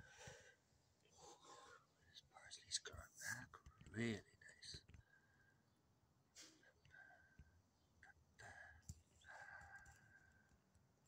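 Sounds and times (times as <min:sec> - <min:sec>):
whispered muttered speech: 0:02.2 - 0:04.9.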